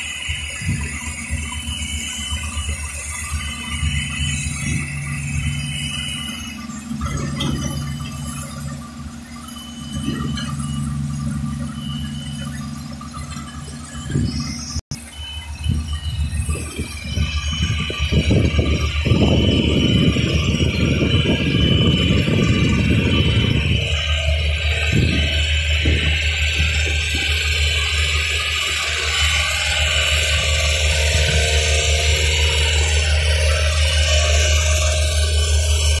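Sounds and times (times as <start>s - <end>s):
boom lift engine humming: 0.0s - 36.0s.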